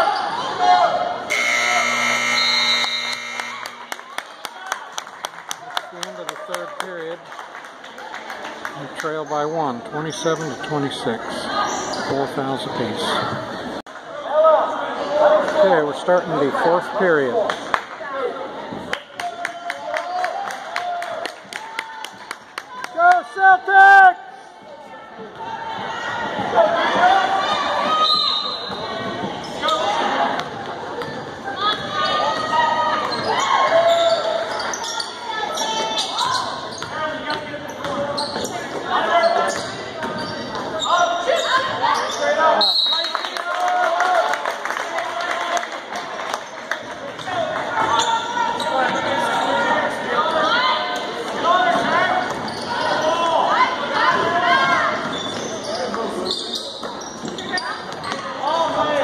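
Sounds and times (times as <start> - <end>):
voices of players and spectators: 0.0 - 59.0
loud horn note: 1.3 - 3.8.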